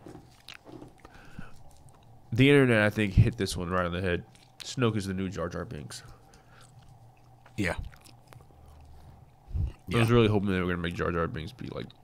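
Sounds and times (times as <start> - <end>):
low room hum: 0.0 - 12.0
people talking: 2.4 - 6.1, 7.6 - 7.9, 9.6 - 12.0.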